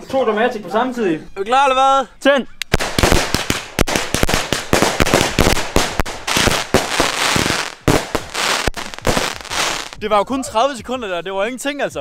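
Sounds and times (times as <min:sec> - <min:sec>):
firework crackle: 0:02.7 - 0:10.0
firework shots and bangs: 0:02.7 - 0:10.0.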